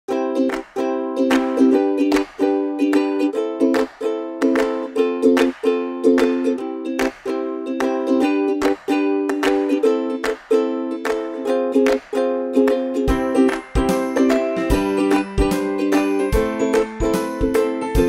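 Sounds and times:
light background music: 13.0 - 18.0.

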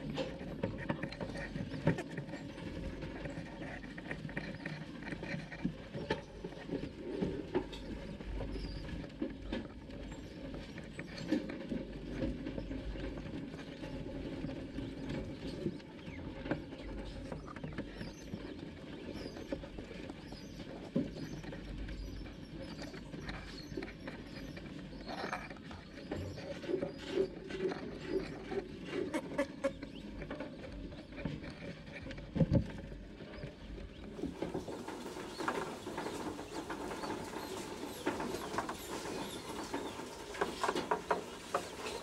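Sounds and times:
small animals scrabbling on bedding: 0.0 - 42.0.

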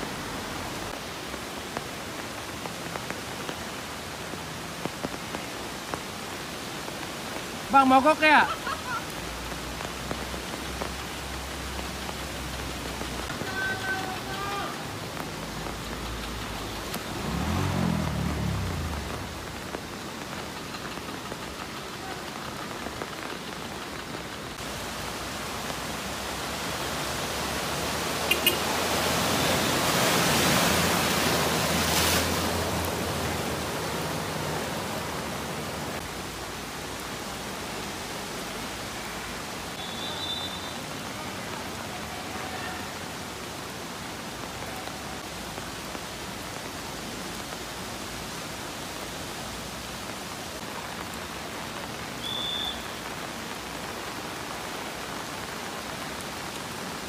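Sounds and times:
floodwater rushing: 0.0 - 57.0
rain: 0.0 - 57.0
vehicle splashing through flood water: 0.0 - 57.0
motorbike engine revving: 17.1 - 19.4.

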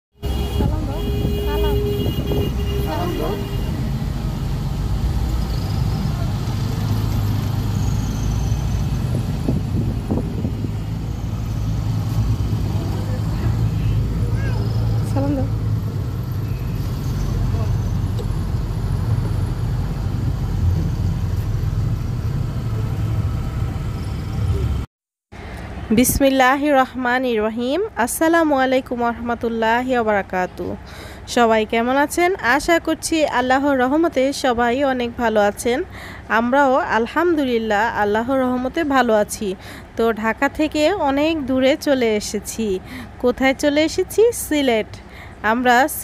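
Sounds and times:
bus engine and road noise: 0.2 - 46.0
passengers talking: 0.3 - 4.0, 12.6 - 16.2, 16.8 - 18.3.

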